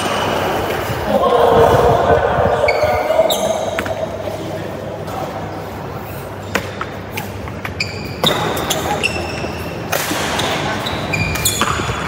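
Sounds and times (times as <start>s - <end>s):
shoe squeak: 2.7s - 4.0s, 7.6s - 12.0s
racket hitting shuttlecock: 6.5s - 12.0s.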